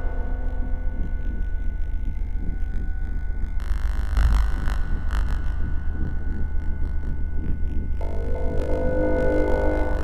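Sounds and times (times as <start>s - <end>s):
deep pulsing drone: 0.0s - 10.0s.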